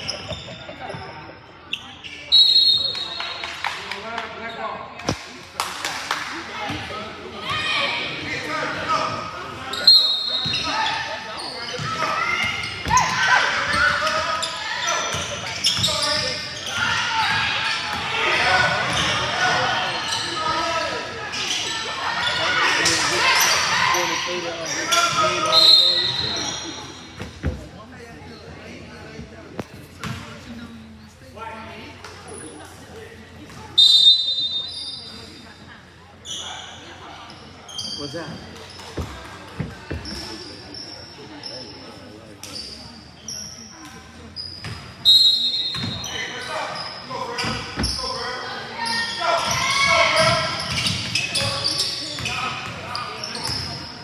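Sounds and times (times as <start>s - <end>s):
shrill whistle blasts: 2.3s - 3.2s, 33.8s - 34.8s, 45.0s - 45.9s.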